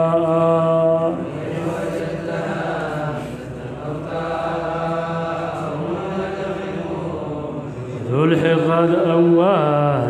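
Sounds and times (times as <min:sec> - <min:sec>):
person chanting slow melody: 0:00.0 - 0:10.0.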